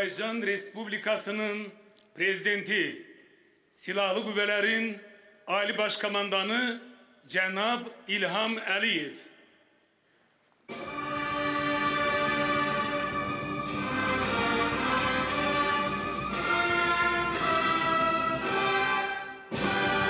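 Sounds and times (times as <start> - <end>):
military brass band playing chords: 10.7 - 20.0.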